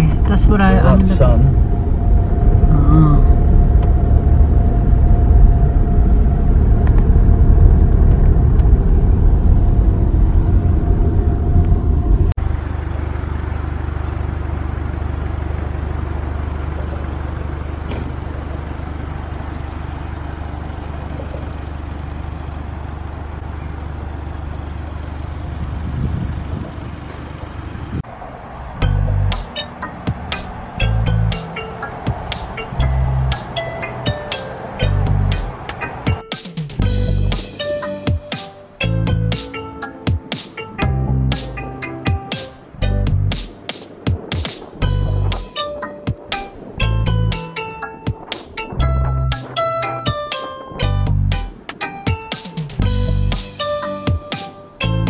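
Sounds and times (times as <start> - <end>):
quiet low rumble: 0.0 - 13.4, 48.5 - 50.2
car engine and road rumble: 0.0 - 55.0.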